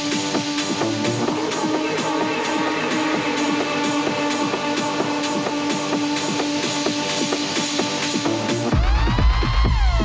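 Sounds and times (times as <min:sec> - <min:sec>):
techno beat with kick and hi-hat: 0:00.0 - 0:10.0.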